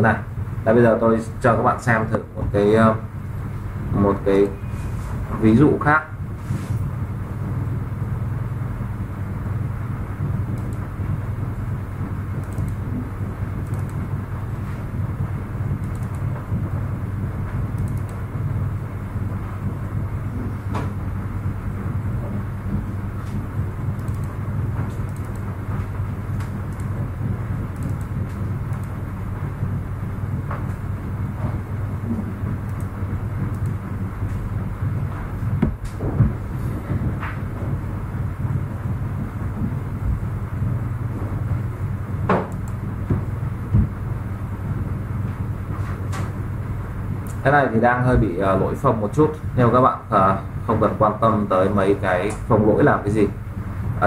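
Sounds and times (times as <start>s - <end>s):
low background hum: 0.0s - 54.0s
faint clicks: 25.0s - 25.4s, 26.3s - 26.9s, 32.7s - 32.9s.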